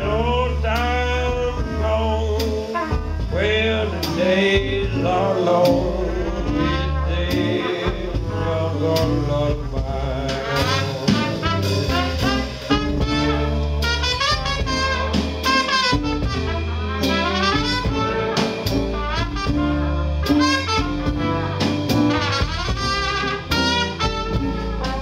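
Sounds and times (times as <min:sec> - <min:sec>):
live jazz band playing: 0:00.0 - 0:25.0
trumpet and trombone lead: 0:00.0 - 0:25.0.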